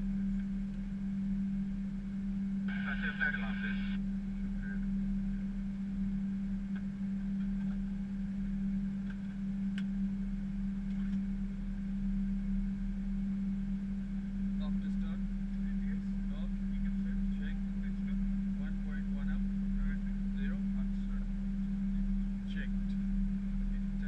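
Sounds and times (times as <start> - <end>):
cockpit hum: 0.0 - 24.0
low rumble: 0.0 - 24.0
faint broken voices: 2.7 - 4.0.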